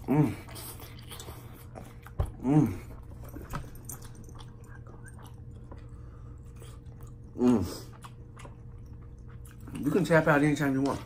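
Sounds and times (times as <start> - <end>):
chewing noodles: 0.0 - 11.0
steady low hum: 0.0 - 11.0.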